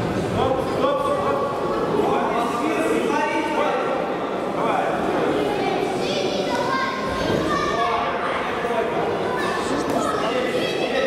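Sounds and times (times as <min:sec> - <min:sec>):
hubbub of spectators: 0:00.0 - 0:11.0
children shouting: 0:05.7 - 0:11.0.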